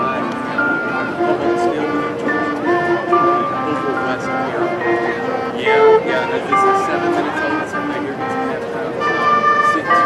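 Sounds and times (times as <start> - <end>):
marching band playing: 0.0 - 10.0
people talking: 0.0 - 10.0.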